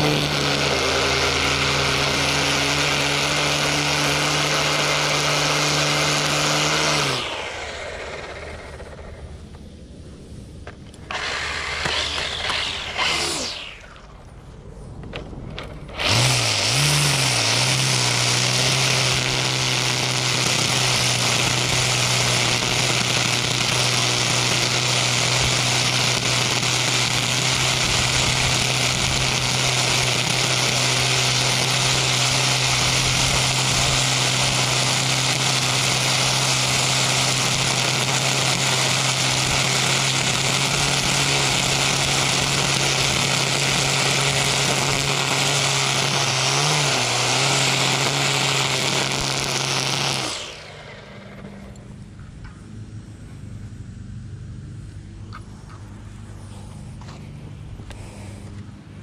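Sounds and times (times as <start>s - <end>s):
trimmer line striking pavement: 0.0s - 9.7s, 10.6s - 14.4s, 15.0s - 59.0s
string trimmer whirring: 0.0s - 9.9s, 10.5s - 59.0s.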